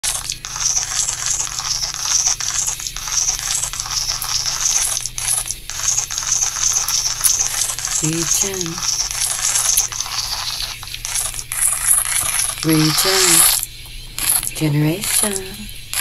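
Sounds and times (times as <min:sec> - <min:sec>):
crackling hiss: 0:00.0 - 0:16.0.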